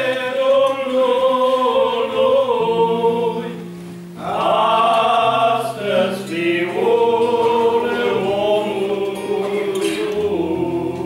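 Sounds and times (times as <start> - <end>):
male trio singing a hymn: 0.0 - 11.0.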